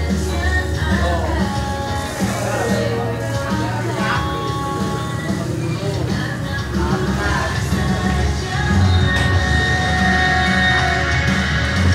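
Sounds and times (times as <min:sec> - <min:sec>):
background music with held notes: 0:00.0 - 0:11.9
continuous low bass: 0:00.0 - 0:11.9.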